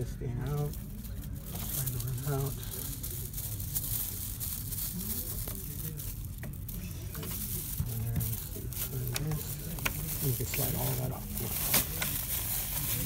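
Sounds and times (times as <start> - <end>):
ribbon film crinkling: 0.0 - 13.0.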